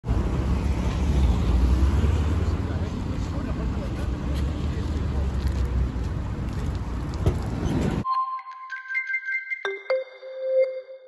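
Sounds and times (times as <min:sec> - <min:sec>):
road traffic rumble: 0:00.0 - 0:08.0.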